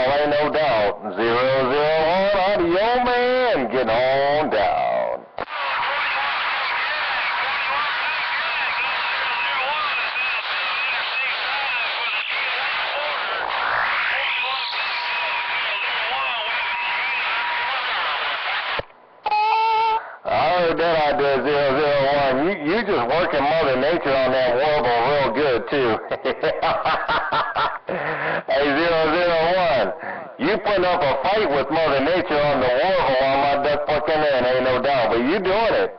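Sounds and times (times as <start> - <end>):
distorted radio voice: 0.0 - 35.9
garbled radio voices: 0.0 - 35.9
radio whistle: 5.4 - 20.2
rising radio sweep: 5.4 - 21.2.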